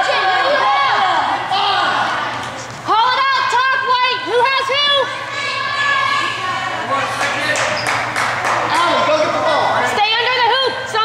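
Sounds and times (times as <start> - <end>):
voices calling out and talking: 0.0 - 11.0.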